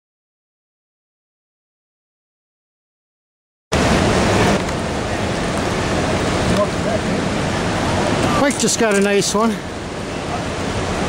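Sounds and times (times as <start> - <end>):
river water rushing over rocks: 3.8 - 11.0.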